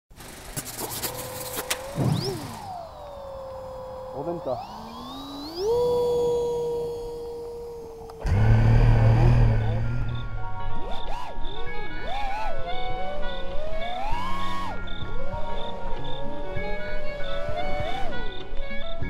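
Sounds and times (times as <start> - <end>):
model plane propeller whine: 0.2 - 9.6
quadcopter motors spinning up: 0.2 - 10.2.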